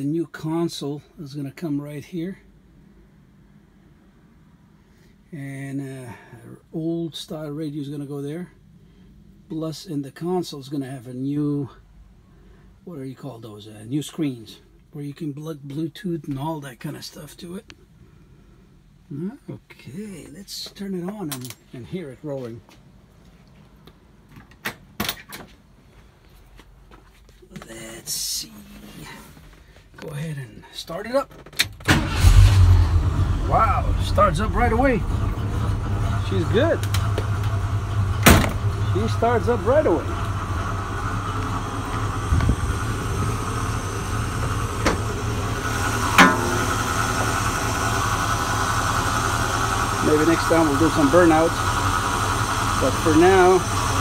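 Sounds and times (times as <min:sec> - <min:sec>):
car engine idling: 0:31.9 - 0:54.0.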